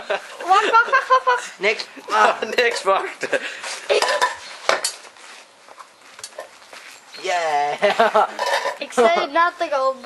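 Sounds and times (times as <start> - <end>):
metal tongs and tin clattering: 8.3 - 8.9.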